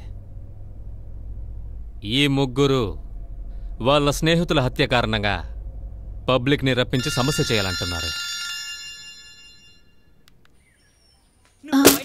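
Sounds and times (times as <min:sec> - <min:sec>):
metallic bell chime ringing: 0:07.0 - 0:10.1.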